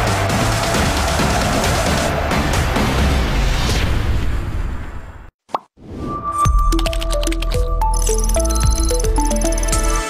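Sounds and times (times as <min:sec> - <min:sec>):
tv theme music: 0:06.0 - 0:10.0.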